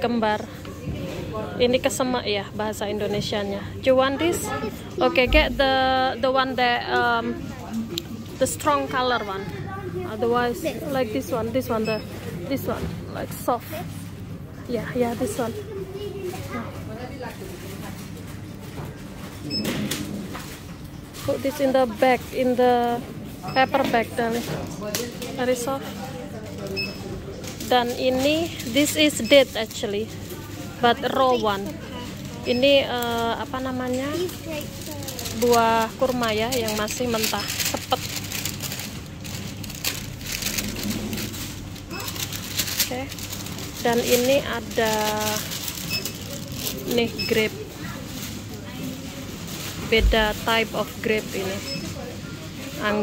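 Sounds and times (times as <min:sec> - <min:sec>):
faint voices: 0:00.0 - 0:53.0
rustling and handling noises: 0:06.8 - 0:53.0
fruit rustling: 0:32.8 - 0:51.6.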